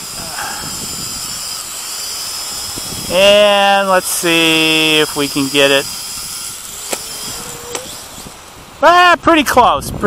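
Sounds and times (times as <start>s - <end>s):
drone motors whining: 0.0s - 8.8s
steady hiss: 0.0s - 9.4s.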